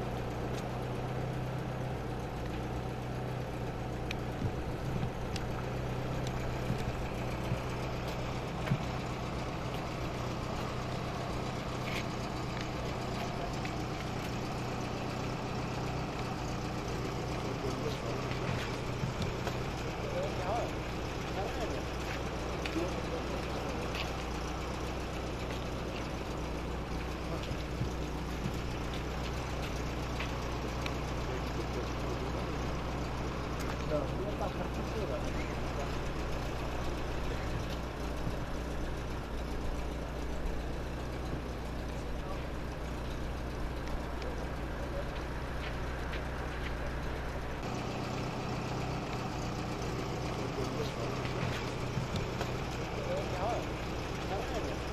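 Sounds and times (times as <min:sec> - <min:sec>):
vehicle engine idling: 0:00.0 - 0:54.9.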